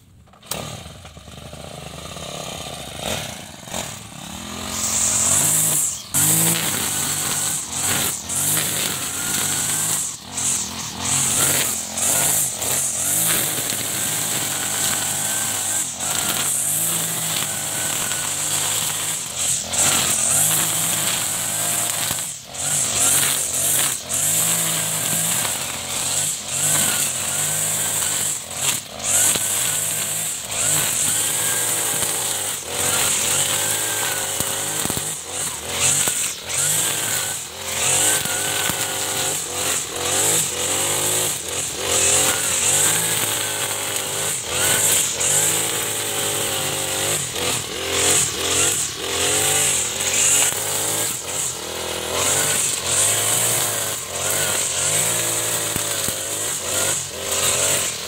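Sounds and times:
brush cutter engine revving: 0.0s - 58.0s
cutting head mowing grass: 0.0s - 58.0s.

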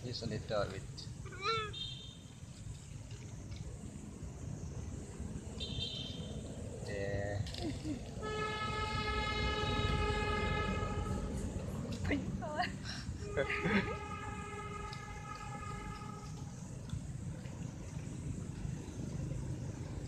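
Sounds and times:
low traffic rumble: 0.0s - 20.0s
vehicle horn long note: 8.2s - 11.4s, 13.2s - 16.4s.

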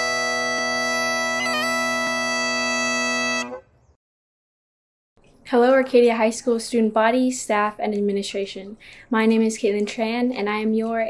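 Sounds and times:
bagpipes holding a note: 0.0s - 3.6s.

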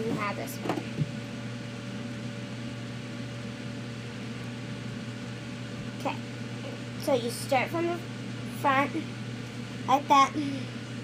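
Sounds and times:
fan humming and hissing: 0.0s - 11.0s.

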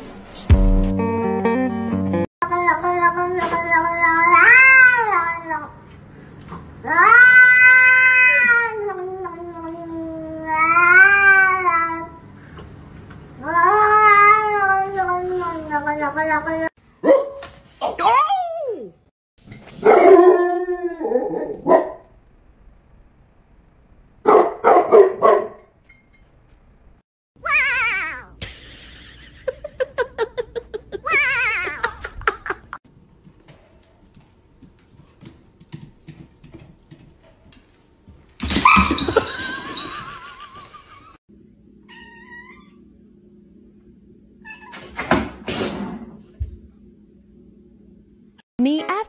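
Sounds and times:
cat yowling meow: 2.9s - 5.7s, 6.8s - 12.1s, 13.4s - 15.4s, 41.9s - 42.8s
small dog barking: 17.0s - 17.5s, 21.6s - 22.0s, 24.3s - 25.6s.

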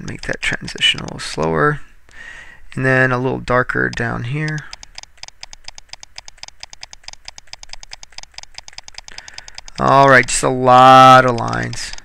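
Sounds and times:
rapid tapping and clicking: 0.1s - 1.2s, 3.9s - 12.0s.

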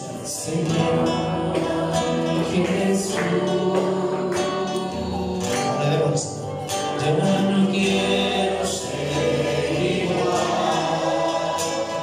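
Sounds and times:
voices singing a hymn: 0.0s - 12.0s.

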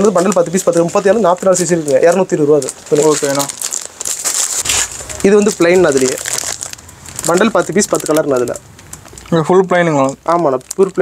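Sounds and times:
man talking: 0.0s - 3.6s, 5.0s - 6.4s, 7.2s - 8.6s, 9.3s - 11.0s
plastic packaging crinkling: 0.0s - 11.0s.

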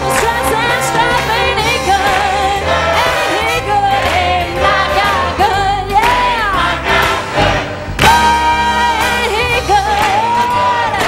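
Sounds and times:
woman singing into microphone: 0.0s - 2.6s, 8.0s - 11.0s
band with steady bass line: 0.0s - 11.0s
choir singing: 0.0s - 11.0s.

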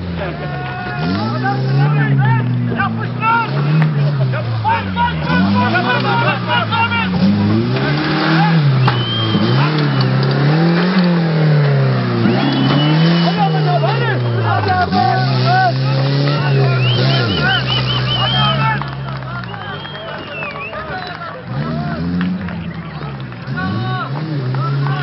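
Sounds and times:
car engine revving: 0.0s - 25.0s
spectators' voices: 0.0s - 25.0s.

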